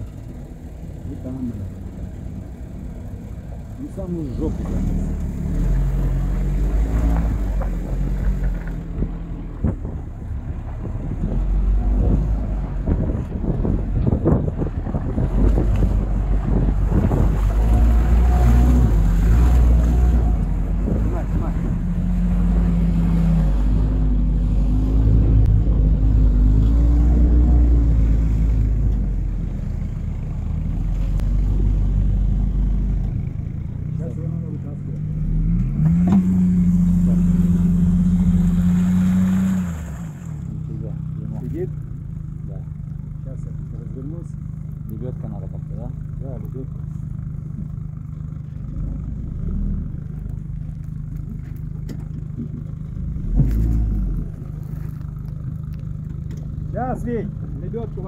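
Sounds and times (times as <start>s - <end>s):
vehicle engine revving: 0.0s - 58.0s.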